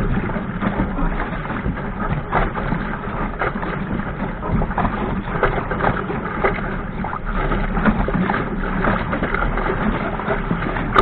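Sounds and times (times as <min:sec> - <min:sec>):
waves splashing against hull: 0:00.0 - 0:11.0
wind buffeting microphone: 0:00.0 - 0:11.0.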